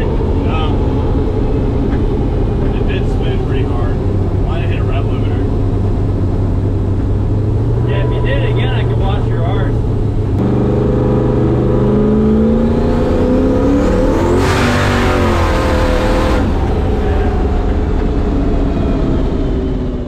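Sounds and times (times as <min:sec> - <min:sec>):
car engine at full throttle: 0:00.0 - 0:20.0.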